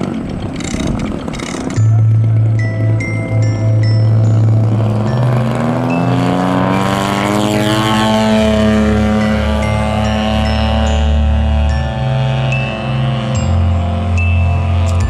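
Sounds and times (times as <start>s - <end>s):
model airplane engine: 0.0s - 15.0s
synth music with chimes: 1.7s - 15.0s.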